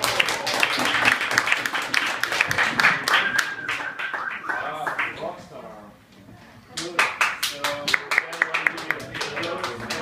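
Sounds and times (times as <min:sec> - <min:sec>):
small audience clapping: 0:00.0 - 0:05.4, 0:06.7 - 0:10.0.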